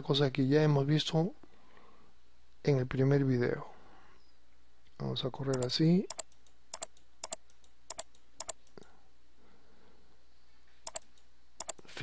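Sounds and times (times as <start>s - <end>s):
computer mouse clicks: 5.5s - 8.8s, 10.8s - 11.8s.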